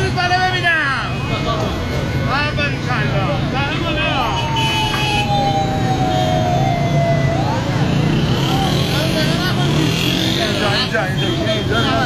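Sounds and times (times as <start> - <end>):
voices: 0.0 - 12.0
siren wailing: 4.2 - 8.4.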